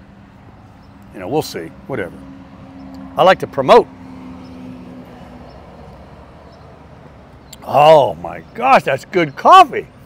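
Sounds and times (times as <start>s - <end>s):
low road traffic rumble: 0.0s - 10.0s
truck engine hum: 0.0s - 10.0s.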